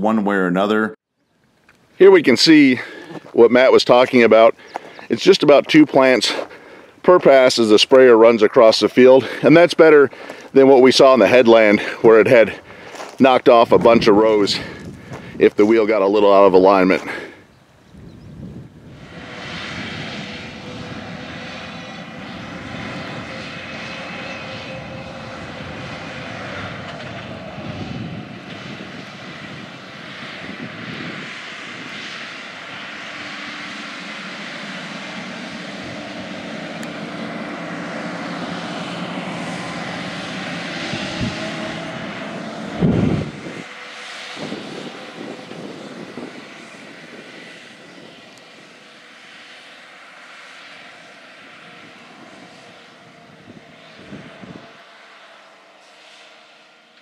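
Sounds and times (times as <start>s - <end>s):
diesel engine droning: 1.6s - 57.0s.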